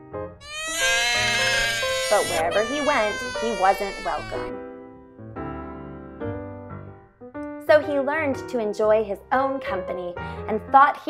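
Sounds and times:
background music: 0.0 - 11.0
cartoon scream: 0.4 - 4.5.

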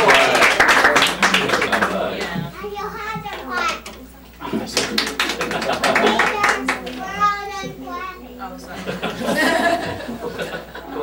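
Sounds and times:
people clapping: 0.0 - 2.5, 4.4 - 7.2.

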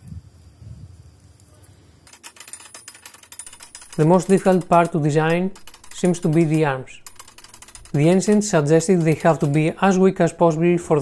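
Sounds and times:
wooden mechanism clicking: 2.0 - 10.4.

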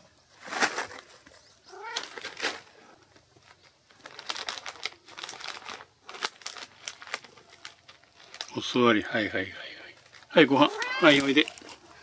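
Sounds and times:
cat meowing: 1.7 - 2.2, 10.5 - 11.4.

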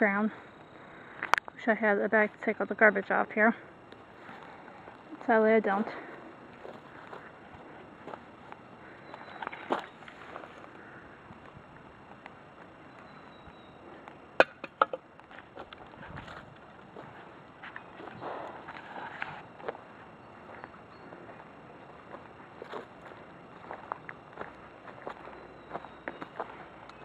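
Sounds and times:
footsteps on forest floor: 5.8 - 11.5, 15.3 - 27.0.

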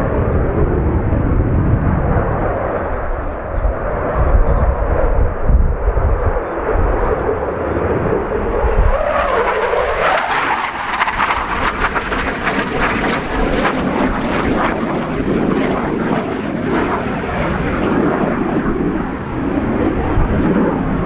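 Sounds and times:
jet engine noise overhead: 0.0 - 21.0.

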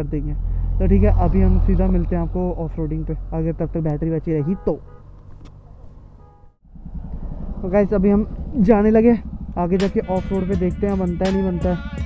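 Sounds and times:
man speaking: 0.0 - 4.9, 7.6 - 11.8
vehicle engine rumble: 0.0 - 12.0.

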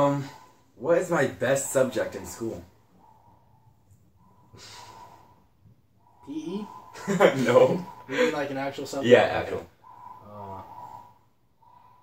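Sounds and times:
person exhaling: 4.2 - 5.4, 9.9 - 12.0.

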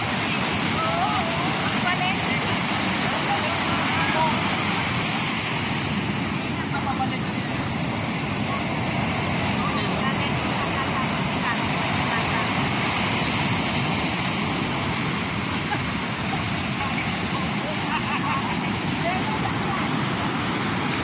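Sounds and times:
ocean surf breaking: 0.0 - 21.0.

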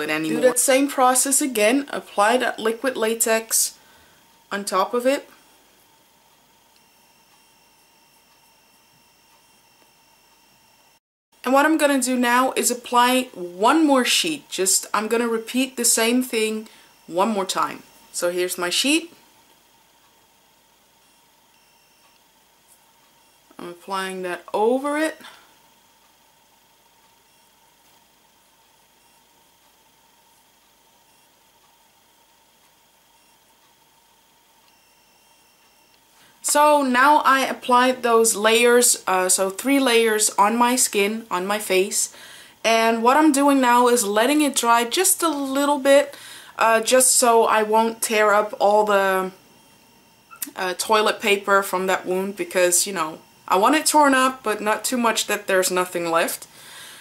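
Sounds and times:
thin high tone: 0.0 - 1.0
faint steady hiss: 0.0 - 57.0
high-pitched electronic whine: 6.8 - 11.0, 34.7 - 36.0, 47.3 - 54.2.

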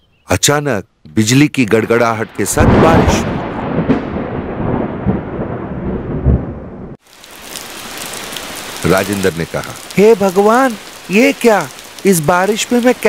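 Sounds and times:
steady rain: 1.9 - 13.0
thunder clap rumbling: 2.0 - 9.9.

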